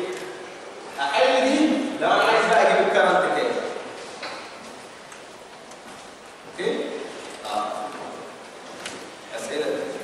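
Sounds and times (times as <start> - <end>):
room hiss: 0.0 - 10.0.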